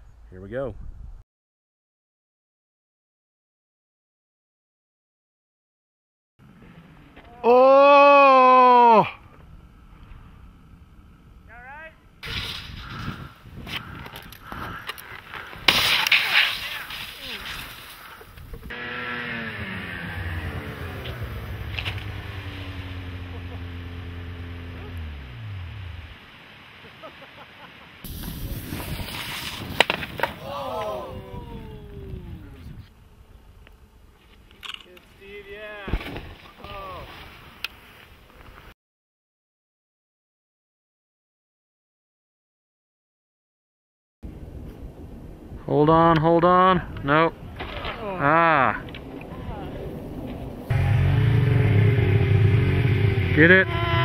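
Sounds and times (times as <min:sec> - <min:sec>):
outdoor noise: 0:06.4 - 0:38.8, 0:44.2 - 0:54.0
person yelling: 0:07.3 - 0:09.2, 0:30.4 - 0:32.6, 0:48.0 - 0:48.8, 0:53.4 - 0:54.0
short shouts: 0:07.3 - 0:09.2, 0:30.4 - 0:32.4, 0:53.4 - 0:54.0.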